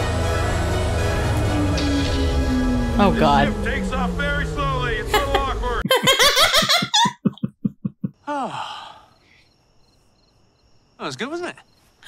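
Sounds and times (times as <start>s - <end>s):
woman laughing: 5.1s - 8.2s.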